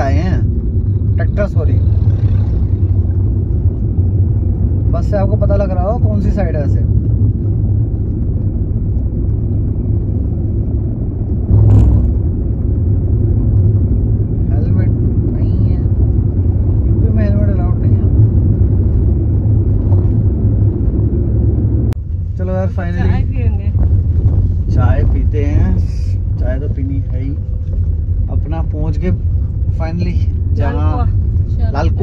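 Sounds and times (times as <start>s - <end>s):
road and engine noise in car: 0.0s - 32.0s.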